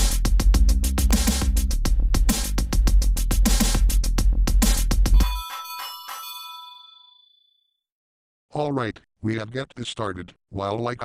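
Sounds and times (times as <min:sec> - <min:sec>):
bell-like ding: 0:05.2 - 0:07.6.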